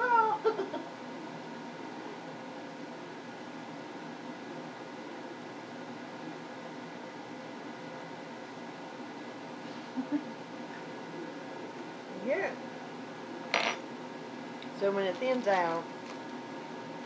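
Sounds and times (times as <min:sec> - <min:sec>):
faint constant hum: 0:00.0 - 0:17.0.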